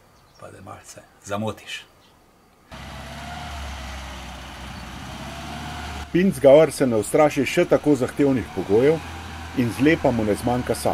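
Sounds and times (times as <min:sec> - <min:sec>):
truck engine running: 0:02.7 - 0:10.9.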